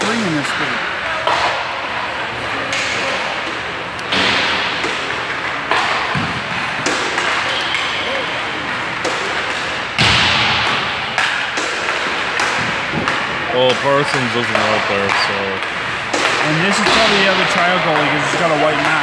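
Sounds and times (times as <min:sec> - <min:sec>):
pucks hitting sticks and boards: 0:00.0 - 0:19.0.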